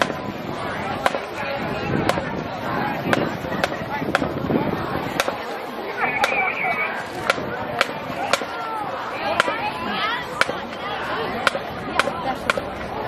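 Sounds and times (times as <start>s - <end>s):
voices and shouting: 0.0s - 13.0s
drumline clicks marching beat: 1.0s - 1.4s, 3.1s - 4.4s, 5.2s - 5.4s, 6.0s - 8.6s, 9.3s - 9.7s, 10.3s - 10.8s, 11.4s - 12.9s.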